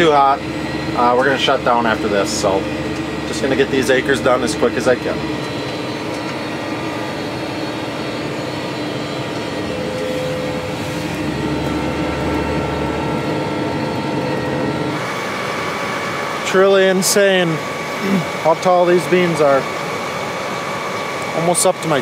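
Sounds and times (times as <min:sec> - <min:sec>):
crop sprayer drone from cab: 0:00.0 - 0:22.0.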